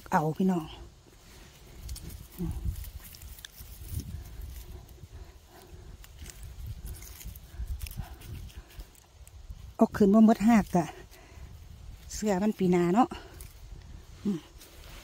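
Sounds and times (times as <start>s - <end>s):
dry grass and twigs crackling: 0.0s - 15.0s.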